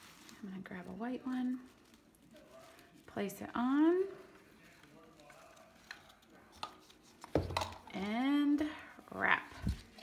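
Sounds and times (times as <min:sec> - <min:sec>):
woman speaking: 0:00.4 - 0:01.7, 0:03.1 - 0:04.3, 0:07.9 - 0:09.8.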